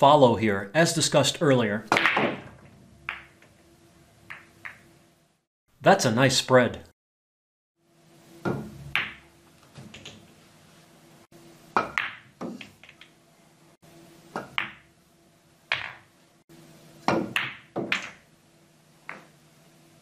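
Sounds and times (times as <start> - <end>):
low steady hum: 0.0 - 5.4
pool balls clicking: 1.9 - 5.0, 8.4 - 10.4, 11.7 - 13.2, 14.3 - 14.9, 15.7 - 16.2, 17.0 - 18.3, 19.0 - 19.4.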